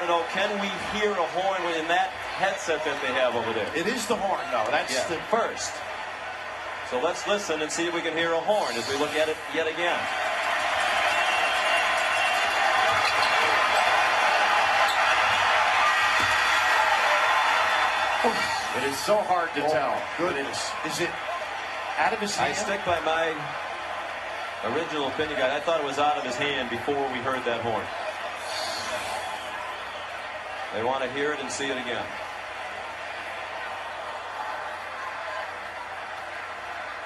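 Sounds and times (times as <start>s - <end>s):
arena crowd roaring: 0.0s - 37.0s.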